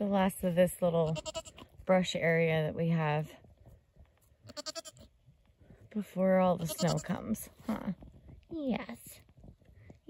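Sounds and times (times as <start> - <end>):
goat bleating: 1.0 - 1.7, 4.4 - 5.1, 6.6 - 7.2.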